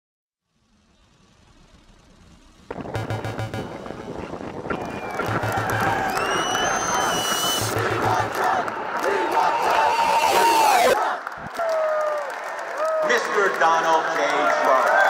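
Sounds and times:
low pulsing beat: 2.7s - 8.9s
crowd cheering and whooping: 4.4s - 15.0s
high whistles: 4.7s - 7.8s.

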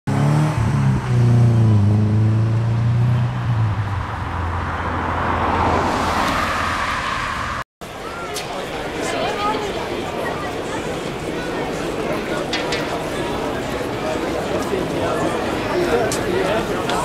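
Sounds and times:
road and tyre noise: 0.1s - 17.0s.

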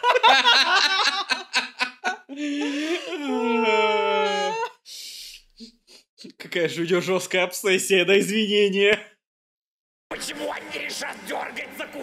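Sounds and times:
voice howling a long wail: 3.1s - 4.8s.

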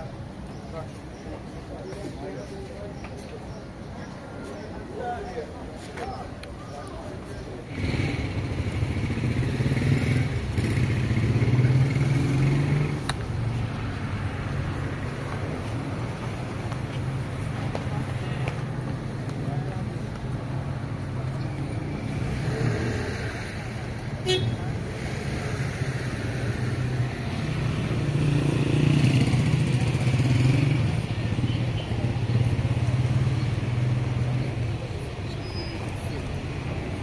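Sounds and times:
vehicle engine passing: 7.6s - 17.5s.

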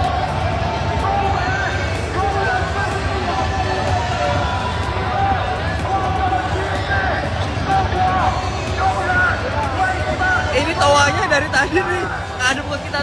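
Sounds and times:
crowd shouts and calls: 0.0s - 13.0s
crowd voices rumble: 0.0s - 13.0s.

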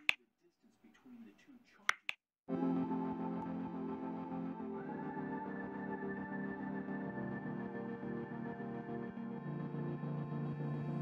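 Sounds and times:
soft intro music with held chords: 2.5s - 11.0s.

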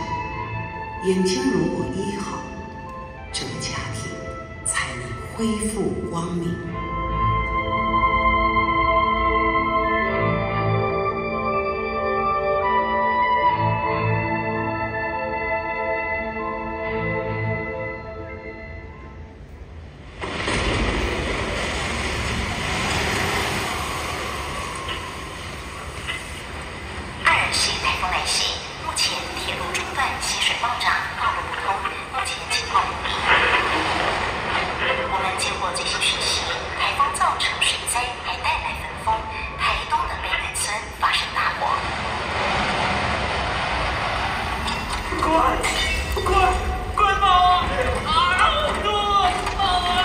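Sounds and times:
loud rushing noise with deep rumble: 20.0s - 28.0s, 33.0s - 36.8s, 41.6s - 50.0s
fire roaring over sound system: 20.0s - 38.8s, 39.8s - 50.0s.

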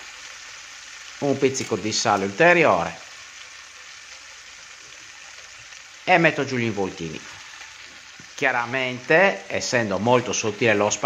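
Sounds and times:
sauce sizzling in a frying pan: 0.0s - 11.0s.

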